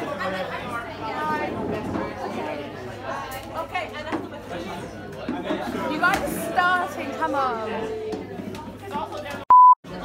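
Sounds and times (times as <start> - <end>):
indistinct chatter: 0.0 - 10.0.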